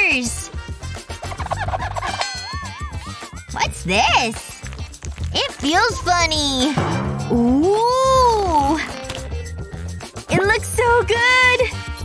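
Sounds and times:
upbeat background music: 0.0 - 12.0.

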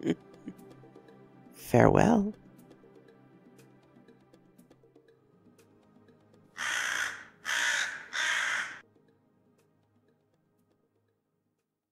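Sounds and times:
faint background music: 0.0 - 11.7
crow cawing: 6.6 - 8.8.

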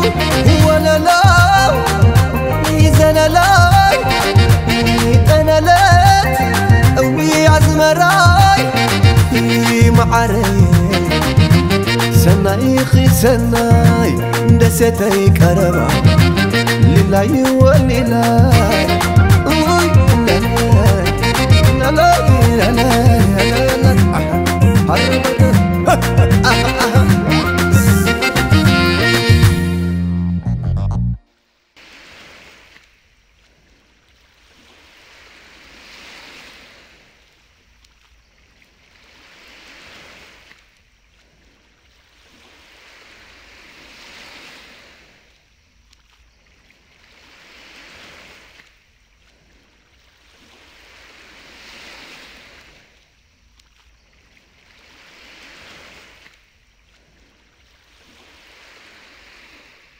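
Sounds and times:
waves washing onto shore: 0.0 - 24.2, 31.8 - 59.9.

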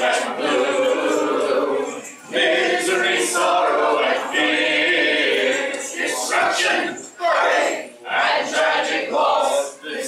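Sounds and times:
voices singing unaccompanied: 0.0 - 10.0.

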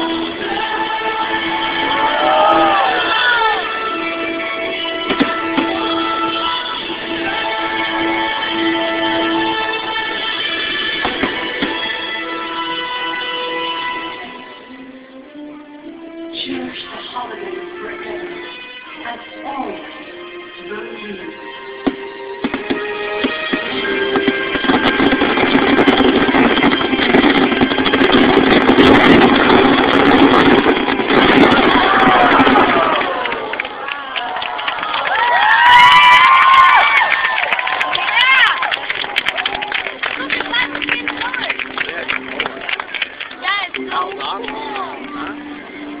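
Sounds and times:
fireworks bursting and crackling: 0.0 - 14.0, 21.8 - 46.0
music: 0.0 - 33.7, 34.7 - 46.0
crowd talking: 36.6 - 46.0.

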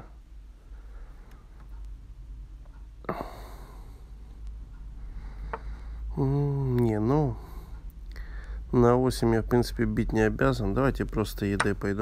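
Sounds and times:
steady low hum: 0.0 - 12.0
man sighing: 3.0 - 4.0, 5.6 - 7.6.

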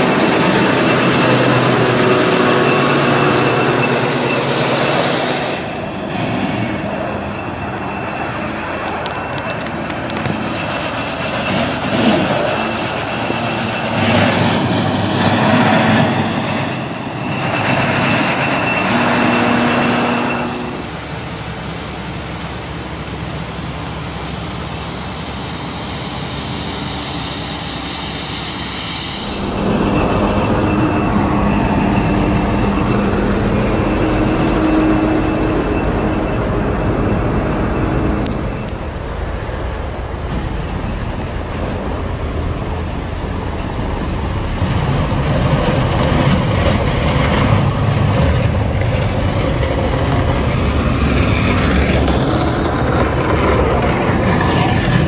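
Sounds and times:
constant noisy rush: 0.0 - 55.0
diesel engines of heavy machinery: 0.0 - 55.0.

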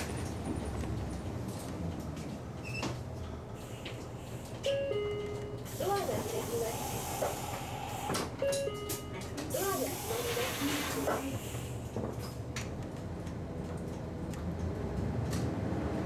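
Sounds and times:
bus engine hum: 0.0 - 16.0.

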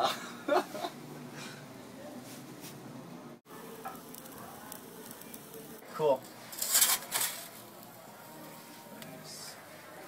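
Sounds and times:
pizza oven sizzling hiss: 3.5 - 10.0.

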